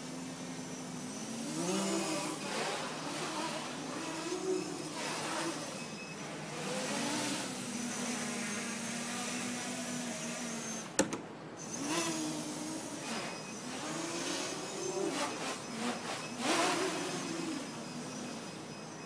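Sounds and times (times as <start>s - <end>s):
quadcopter motors whining: 0.0s - 19.0s
sharp click: 11.0s - 11.3s.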